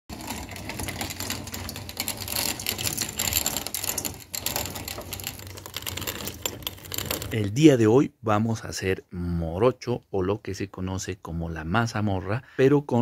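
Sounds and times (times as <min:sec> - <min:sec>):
corn kernels rattling against metal: 0:00.1 - 0:07.4
hand-cranked grain mill: 0:00.1 - 0:07.4.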